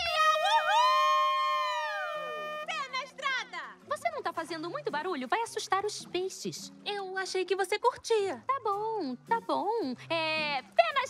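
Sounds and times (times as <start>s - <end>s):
cartoon character high-pitched cry: 0.0s - 2.7s.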